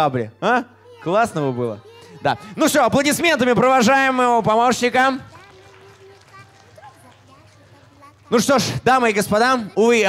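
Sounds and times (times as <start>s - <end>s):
faint murmur of children's voices: 5.1s - 8.8s.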